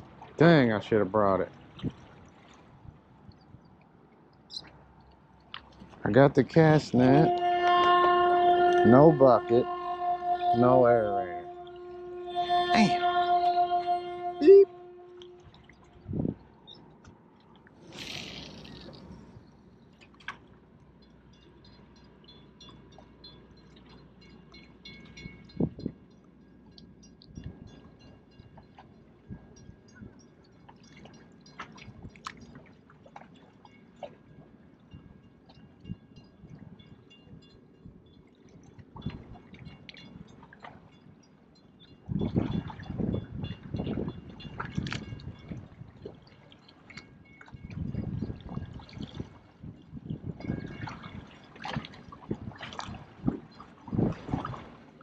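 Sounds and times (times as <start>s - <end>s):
water lapping against rocks: 0.0s - 10.6s, 15.0s - 21.0s, 42.1s - 55.0s.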